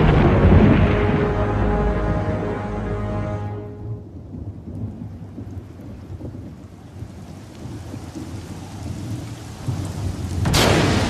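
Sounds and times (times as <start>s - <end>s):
distant thunder rumbling: 0.0s - 2.8s, 3.8s - 11.0s.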